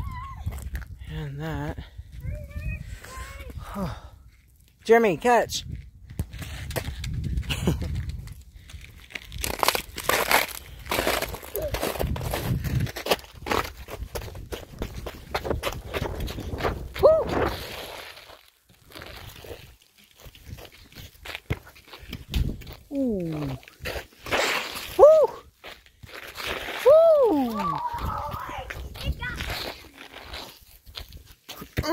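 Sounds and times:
footsteps crunching through snow: 0:08.8 - 0:31.9.

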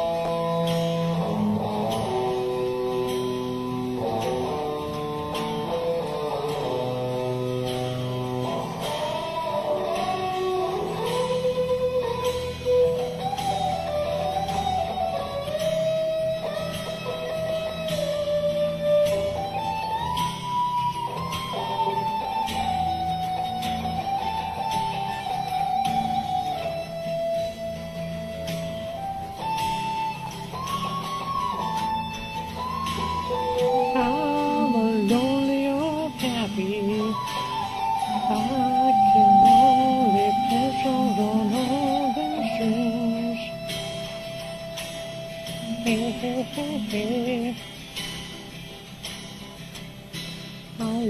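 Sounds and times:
slide guitar melody: 0:00.0 - 0:51.0
wavering lower guitar line: 0:00.0 - 0:51.0.

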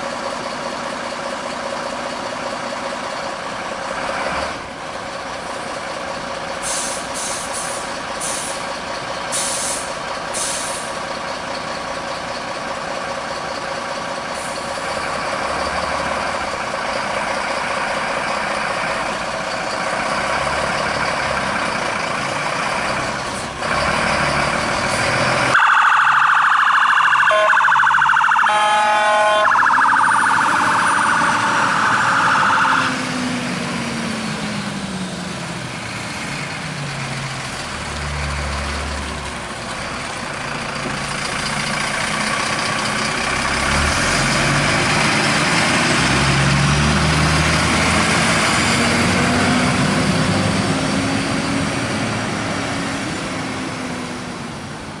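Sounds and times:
truck diesel engine revving: 0:00.1 - 0:25.6, 0:28.6 - 0:54.5
fire engine siren pulsing: 0:25.4 - 0:34.7.

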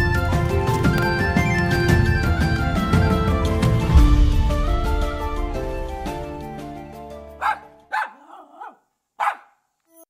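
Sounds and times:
background music: 0:00.0 - 0:10.0
dog barking: 0:07.4 - 0:09.7.

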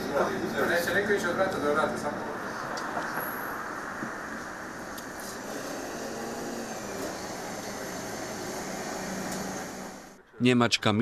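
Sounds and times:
bus engine running: 0:03.7 - 0:10.2.

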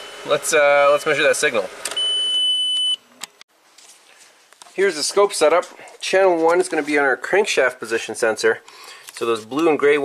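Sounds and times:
car warning buzzer beep: 0:01.9 - 0:03.1.

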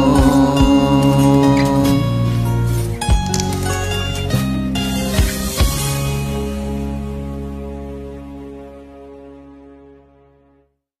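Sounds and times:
deep bass note: 0:00.0 - 0:02.4
pop ballad backing track chord: 0:00.0 - 0:09.0.

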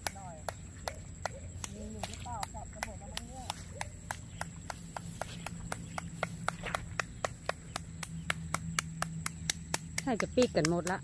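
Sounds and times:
person clapping hands: 0:00.0 - 0:11.0.

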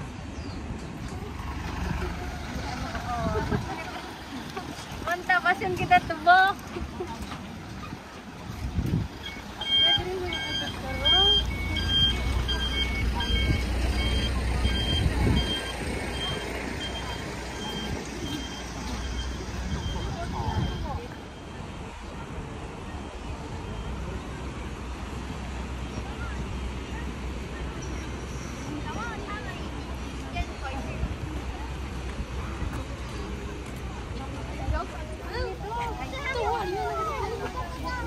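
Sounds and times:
low engine rumble: 0:00.0 - 0:38.0
reversing alarm beeps: 0:09.2 - 0:21.2.

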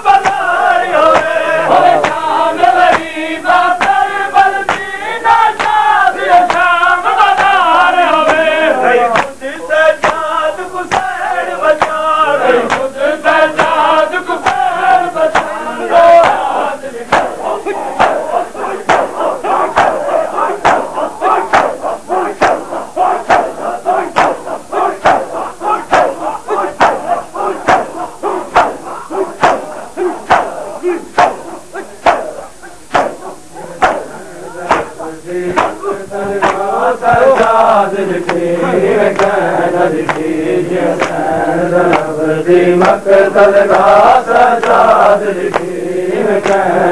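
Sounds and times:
crowd shouting and chanting: 0:00.0 - 0:46.9
hands slapping chests: 0:00.1 - 0:08.5, 0:09.1 - 0:09.4, 0:10.0 - 0:12.9, 0:13.5 - 0:16.5, 0:17.1 - 0:17.4, 0:18.0 - 0:38.5, 0:39.1 - 0:42.2, 0:42.8 - 0:43.0, 0:44.6 - 0:45.7, 0:46.4 - 0:46.7.

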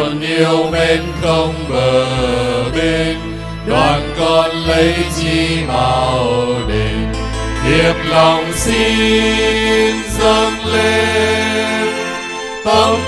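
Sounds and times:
hymn sung in gliding notes: 0:00.0 - 0:13.0
sustained instrumental bass notes: 0:00.0 - 0:13.0.

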